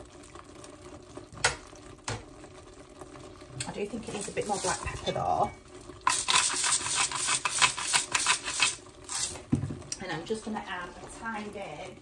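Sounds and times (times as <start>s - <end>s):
pepper mill grinding: 6.0s - 9.4s.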